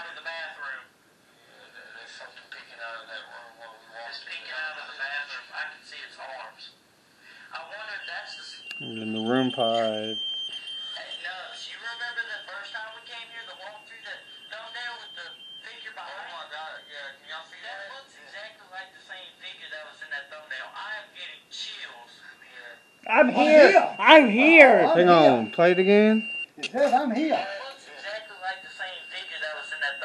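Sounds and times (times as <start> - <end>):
thin high whine: 7.3 - 17.6, 20.9 - 30.0
loud buzzy tone: 23.0 - 26.4
indistinct voices: 23.0 - 26.8.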